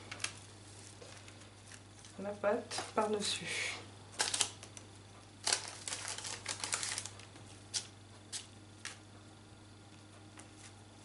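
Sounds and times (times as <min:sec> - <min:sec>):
baking paper crackling: 0:00.0 - 0:03.1, 0:04.1 - 0:09.0.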